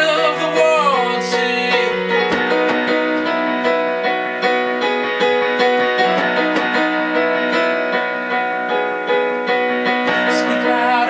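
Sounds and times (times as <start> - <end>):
electronic keyboard piano chords: 0.0 - 11.0.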